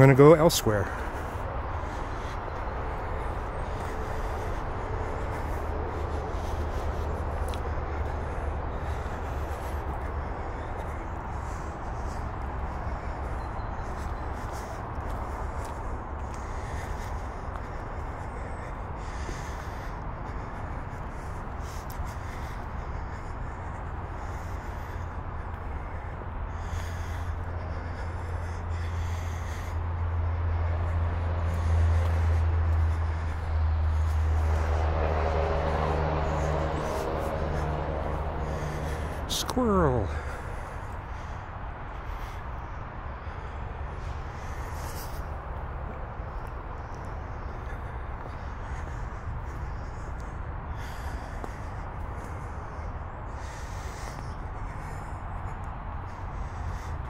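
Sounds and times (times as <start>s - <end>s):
freeway traffic roar: 0.0s - 57.0s.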